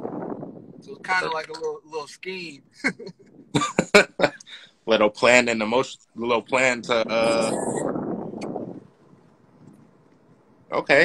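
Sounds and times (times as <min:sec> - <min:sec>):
man laughing: 0:01.1 - 0:01.6, 0:02.7 - 0:04.6, 0:07.1 - 0:07.8.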